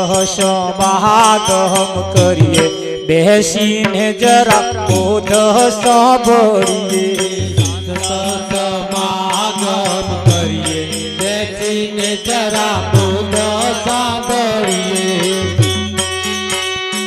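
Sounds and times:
fast percussion strokes: 0.0 - 17.0
harmonium melody: 0.0 - 17.0.

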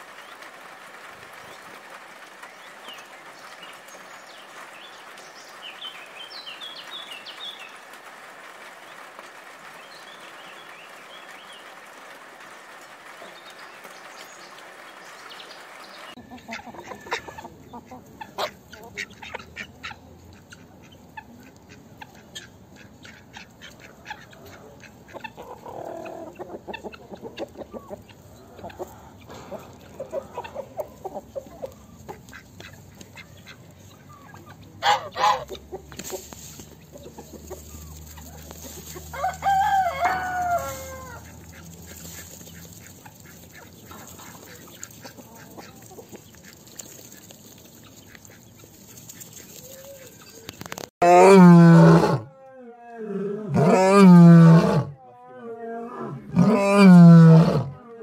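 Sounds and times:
hens clucking: 0.0 - 52.2
rooster crowing: 39.0 - 41.2.

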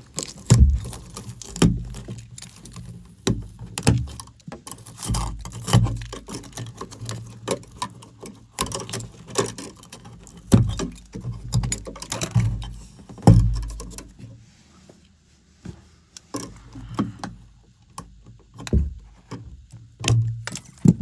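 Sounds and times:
heavier thumps: 0.5 - 1.1, 18.7 - 19.1.

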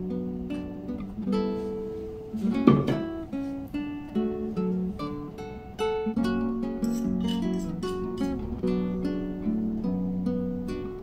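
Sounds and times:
acoustic guitar plucked notes: 0.0 - 11.0.

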